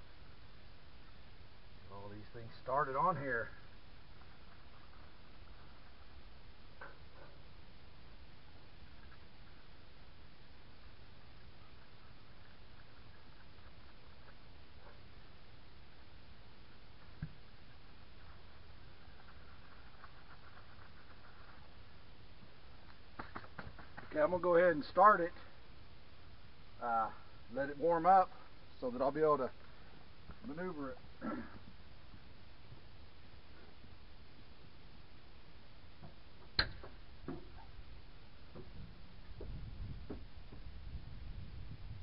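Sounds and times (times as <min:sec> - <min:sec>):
low background hiss: 0:00.0 - 0:42.0.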